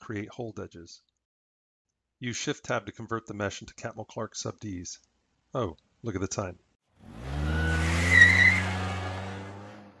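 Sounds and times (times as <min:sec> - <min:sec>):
tyre squeal: 0:07.4 - 0:09.2.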